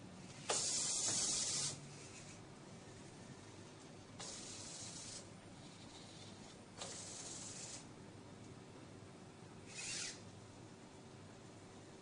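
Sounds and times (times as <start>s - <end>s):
hiss: 0.4s - 1.8s, 4.2s - 5.2s.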